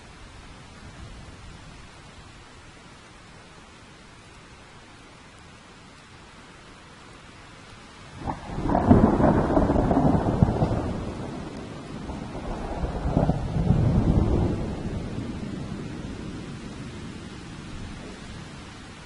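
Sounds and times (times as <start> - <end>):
steady rain: 0.0 - 19.0
thunder crack and rumble: 8.2 - 18.3.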